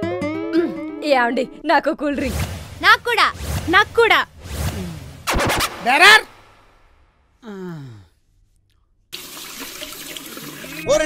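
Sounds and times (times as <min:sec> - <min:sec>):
tap running into washbasin: 0:09.2 - 0:10.8.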